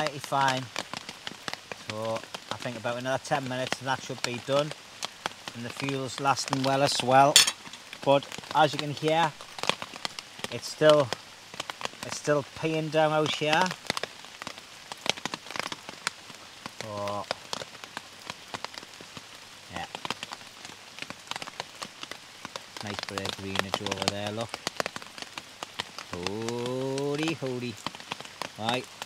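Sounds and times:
heavy rain in woodland: 0.0 - 29.0
raindrops hitting close by: 0.0 - 29.0.

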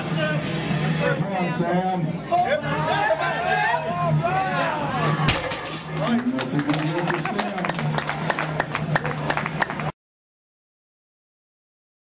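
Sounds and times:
barbell thud on platform: 5.3 - 5.9
people clapping: 5.8 - 10.0.

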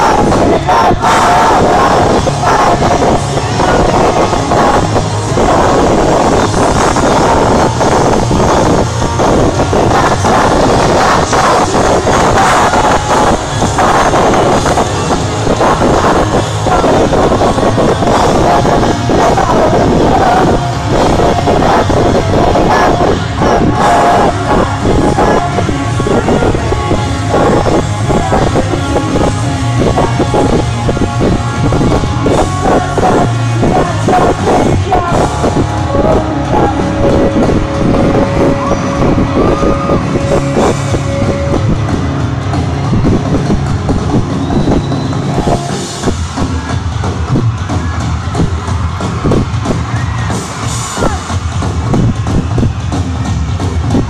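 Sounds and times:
drums: 0.0 - 54.0
pop-rock band playing live: 0.0 - 54.0.

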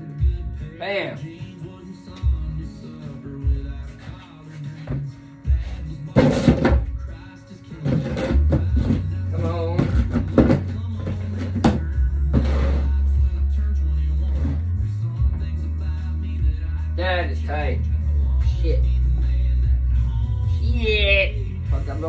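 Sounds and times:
country song on radio: 0.0 - 22.0.

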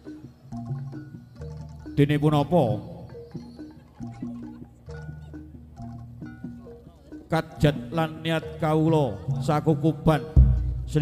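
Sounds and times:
struck bronze gamelan notes: 0.0 - 11.0.

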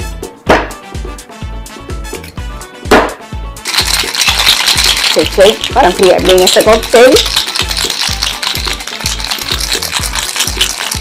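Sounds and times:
background music with steady beat: 0.0 - 11.0
ice rattling in cocktail shaker: 3.6 - 11.0.

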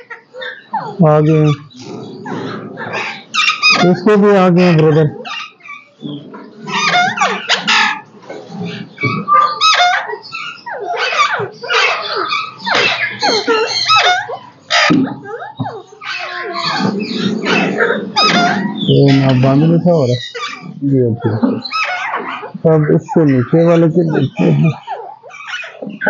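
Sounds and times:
parakeets calling: 0.0 - 26.0.

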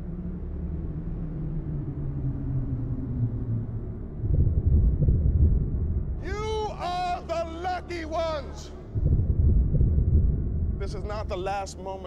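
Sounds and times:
deep cinematic rumble: 0.0 - 12.0
falling low tones: 0.2 - 11.7.

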